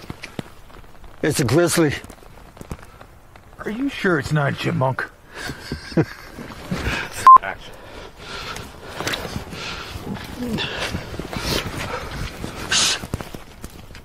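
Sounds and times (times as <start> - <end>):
rustling through brush: 0.0 - 4.6, 5.2 - 14.0
person laughing: 5.6 - 6.4
person breathing: 6.8 - 13.1.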